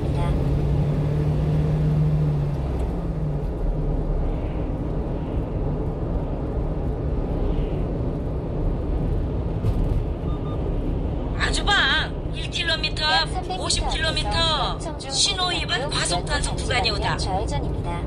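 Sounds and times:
truck engine and road noise: 0.0 - 18.0.

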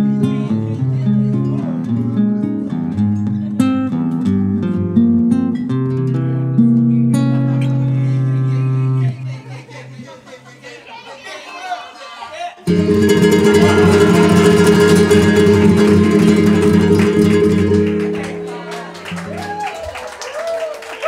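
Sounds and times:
guitar duo strumming chords: 0.0 - 9.6, 12.7 - 19.4.

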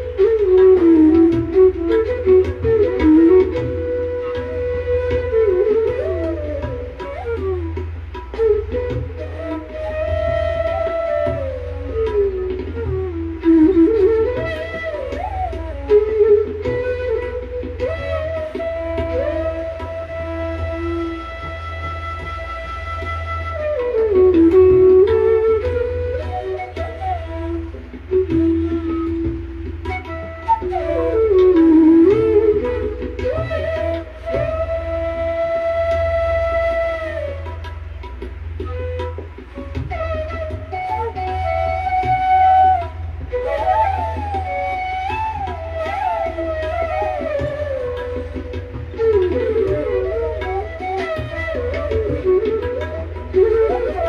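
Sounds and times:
bamboo flute melody: 0.0 - 54.0.

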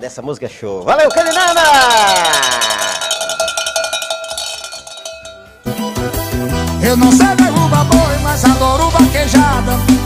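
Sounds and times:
metal bell ringing: 0.8 - 6.4.

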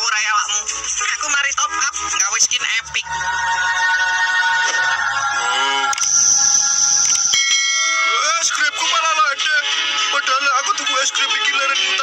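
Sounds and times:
ringing chime-like tone: 6.0 - 8.6.

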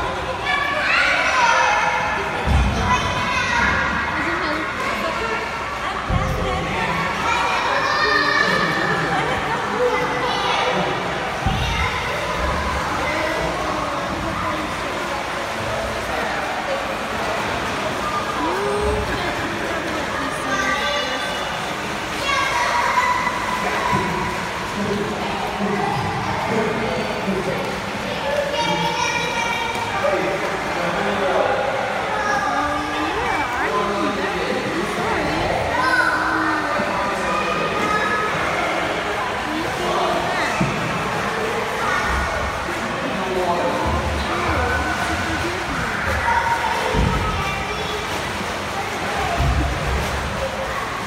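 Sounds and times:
echoing voices: 0.0 - 51.0.

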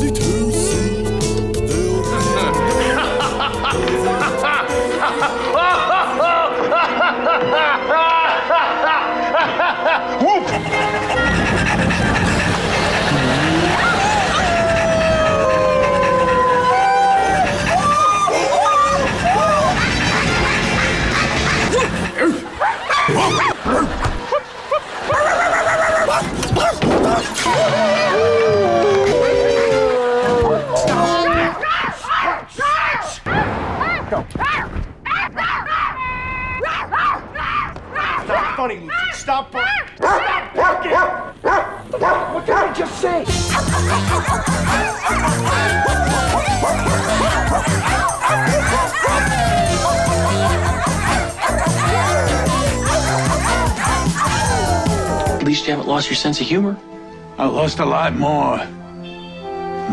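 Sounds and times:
man howling like a dog: 1.6 - 4.6, 13.2 - 19.8, 27.5 - 32.3, 43.3 - 55.4
dog barking: 40.0 - 42.8, 43.4 - 54.5
loud music with children singing: 43.4 - 55.4.

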